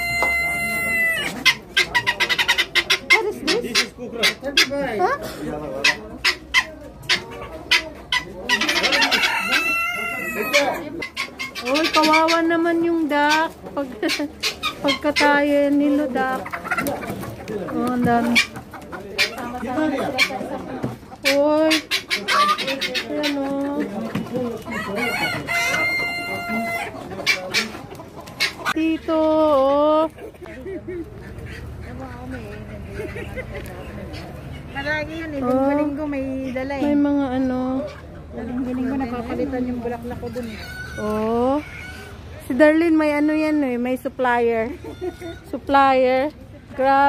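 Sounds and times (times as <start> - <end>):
rooster crowing: 0.0 - 1.4, 8.8 - 10.8, 24.7 - 27.0
guineafowl calling: 0.0 - 5.0, 5.7 - 20.5, 21.2 - 29.0, 40.2 - 42.6, 44.6 - 45.9
chickens clucking: 0.0 - 47.0.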